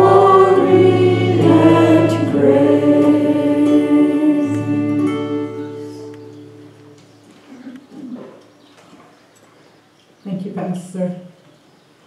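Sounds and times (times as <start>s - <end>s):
held hymn chord: 0.0s - 7.4s.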